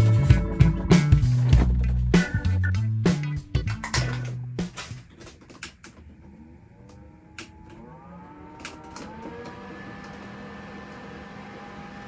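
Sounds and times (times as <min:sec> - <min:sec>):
electric fan motor whine: 0:06.0 - 0:12.0.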